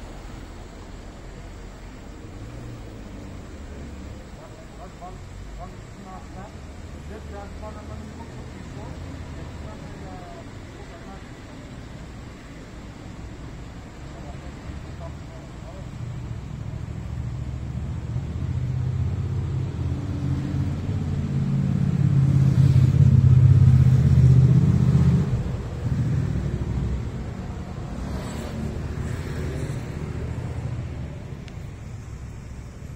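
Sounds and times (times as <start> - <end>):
vehicle engine rumble: 0.0 - 32.9.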